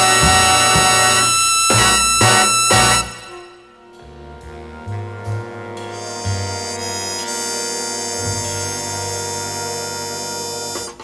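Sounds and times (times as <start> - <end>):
upright bass: 0.0 - 3.3, 4.0 - 10.7
horns sustained chord: 0.0 - 11.0.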